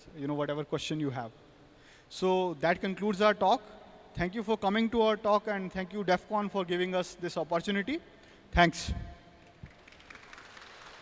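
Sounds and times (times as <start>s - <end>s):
faint audience applause: 9.4s - 11.0s.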